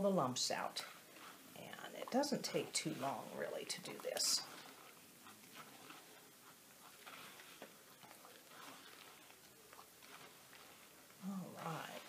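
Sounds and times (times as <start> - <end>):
hand squelching wet plaster: 0.0 - 12.0.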